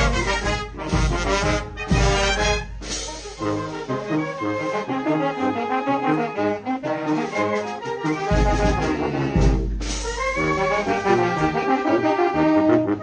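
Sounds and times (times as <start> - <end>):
wind band playing: 0.0 - 13.0.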